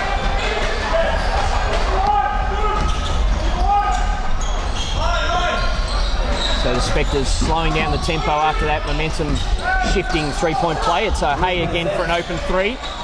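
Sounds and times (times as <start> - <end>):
crowd and player voices: 0.0 - 13.0.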